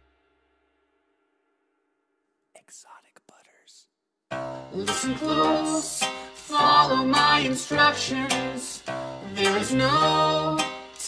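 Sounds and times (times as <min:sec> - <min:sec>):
person whispering: 0:02.6 - 0:04.0.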